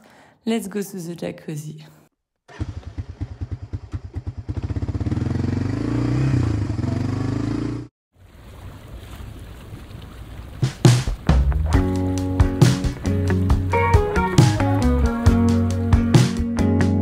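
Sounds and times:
quad bike engine: 2.5s - 7.9s.

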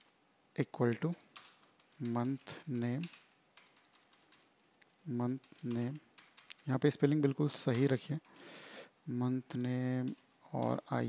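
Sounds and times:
keyboard key clicks: 1.3s - 4.5s, 5.4s - 6.7s.

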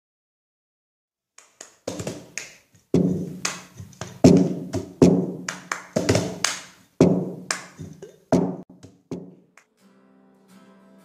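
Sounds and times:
rhythmic percussive taps: 1.4s - 9.7s.

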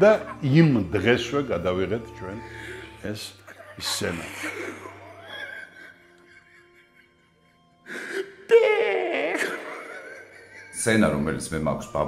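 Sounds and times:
man crying out wavering: 3.5s - 6.6s, 8.2s - 10.8s.

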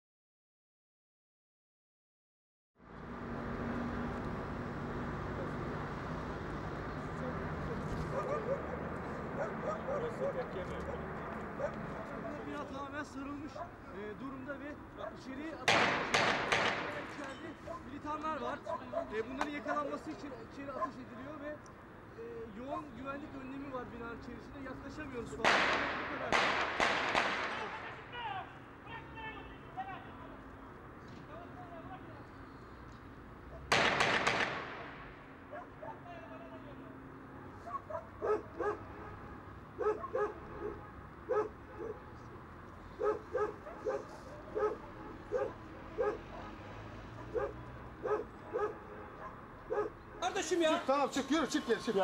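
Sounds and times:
dog barking: 8.1s - 12.5s, 13.5s - 13.8s, 18.6s - 19.9s, 20.8s - 21.0s, 35.5s - 36.1s, 37.6s - 39.2s, 39.8s - 42.1s, 43.0s - 50.0s
gunshots with echo: 15.6s - 17.2s, 25.4s - 27.9s, 33.7s - 35.2s.

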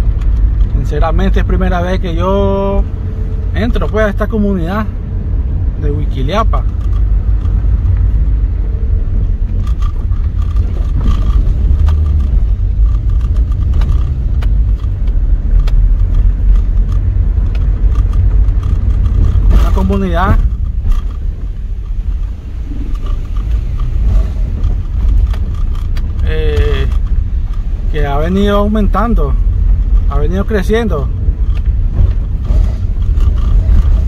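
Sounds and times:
car driving on dirt road: 0.0s - 34.0s
light clicks and knocks: 6.4s - 8.5s, 9.5s - 34.0s
person speaking: 19.5s - 20.5s, 26.2s - 27.0s.

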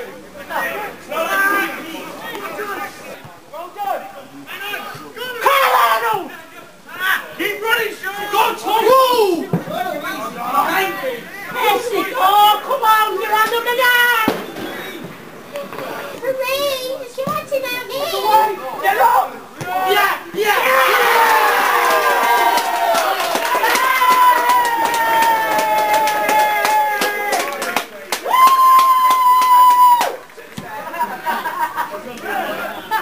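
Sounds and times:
voices shouting and calling: 0.0s - 33.0s.

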